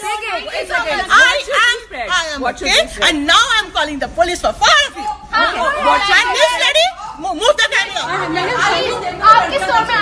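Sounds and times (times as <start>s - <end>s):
people talking over each other: 0.0s - 10.0s.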